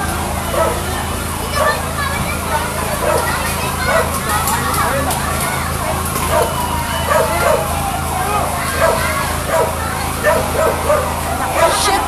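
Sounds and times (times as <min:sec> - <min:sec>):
crowd voices: 0:00.0 - 0:12.0
dog barking: 0:00.5 - 0:00.9, 0:01.5 - 0:01.8, 0:02.5 - 0:04.2, 0:06.3 - 0:07.7, 0:08.7 - 0:12.0.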